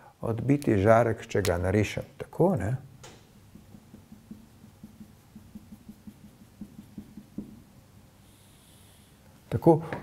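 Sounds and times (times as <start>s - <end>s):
marker tapping on whiteboard: 3.0s - 7.7s.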